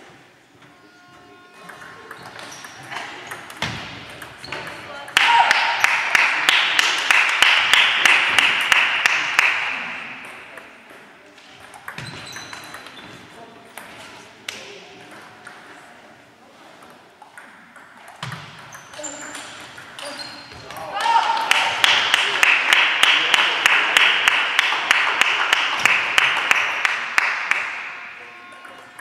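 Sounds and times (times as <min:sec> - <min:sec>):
clapping and cheering: 0:05.2 - 0:09.9, 0:20.9 - 0:28.3.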